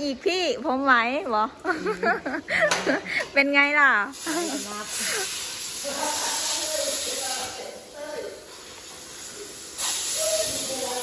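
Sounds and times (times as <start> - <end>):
welding hiss: 4.0 - 11.0.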